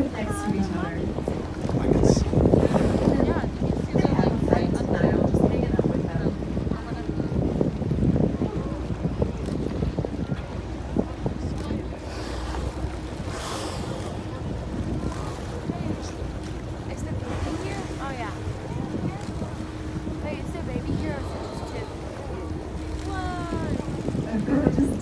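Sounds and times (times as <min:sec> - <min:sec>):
boat engine hum: 0:00.0 - 0:25.0
sea wash: 0:00.0 - 0:25.0
wind buffeting microphone: 0:00.0 - 0:25.0.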